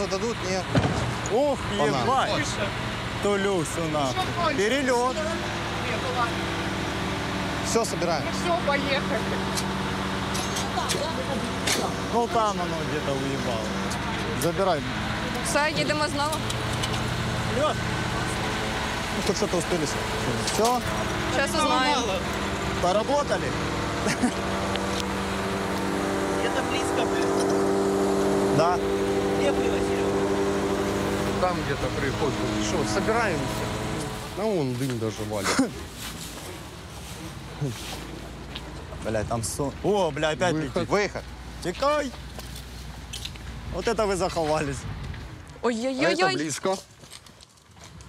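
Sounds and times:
truck engine idling: 0.0 - 44.8.

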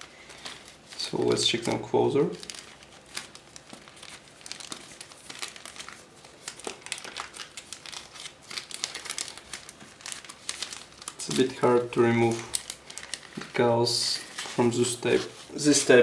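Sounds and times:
plastic bag crinkling: 0.0 - 16.0.

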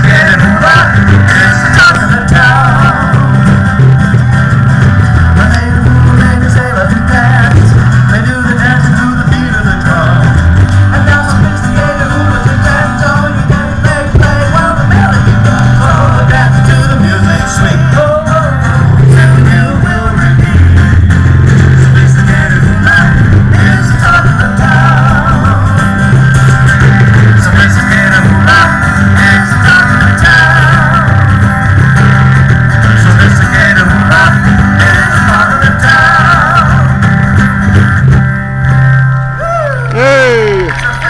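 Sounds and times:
bass guitar notes: 0.0 - 41.0
distorted live band music: 0.0 - 41.0.

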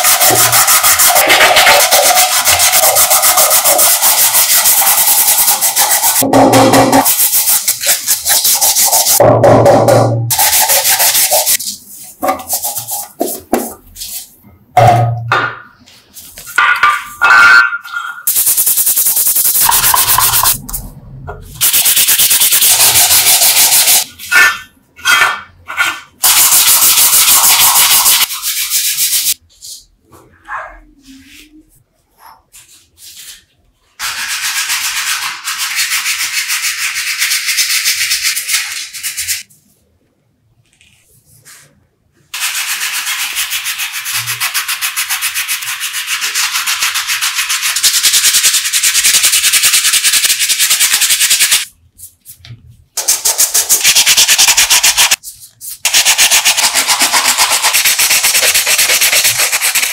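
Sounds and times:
sandpaper rubbing metal: 0.0 - 9.2, 10.3 - 14.4, 16.4 - 20.6, 21.6 - 29.4, 32.5 - 39.5, 42.3 - 52.4, 53.0 - 59.9.

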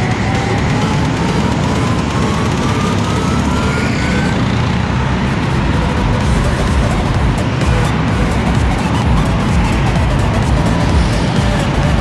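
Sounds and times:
go-karts echoing in a hall: 0.0 - 12.0
kart accelerating: 0.0 - 12.0
music playing: 0.0 - 12.0.

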